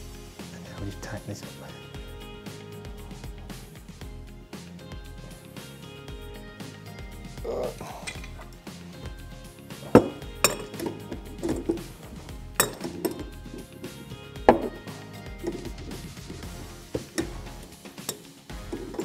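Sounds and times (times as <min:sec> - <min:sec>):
background music: 0:00.0 - 0:19.0
spanner clinking on brass nut: 0:08.0 - 0:08.5, 0:09.8 - 0:11.9, 0:12.6 - 0:15.8.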